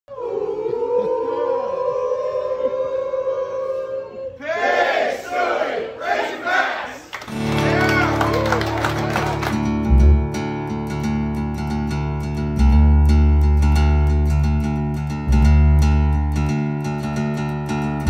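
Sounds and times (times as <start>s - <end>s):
crowd yelling and cheering: 6.2s - 9.8s
music: 7.3s - 18.0s.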